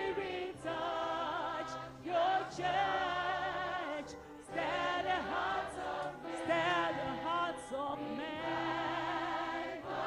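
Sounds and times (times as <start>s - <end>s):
church choir singing gospel: 0.0s - 10.0s.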